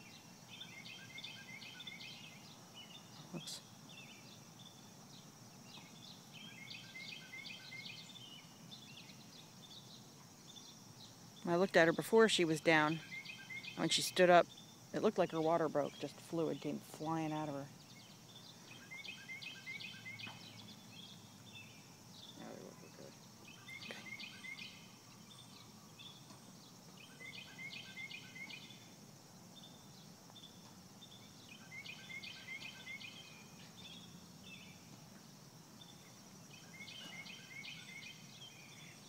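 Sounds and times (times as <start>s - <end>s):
bird chirping: 0.0s - 39.0s
insects humming: 0.0s - 39.0s.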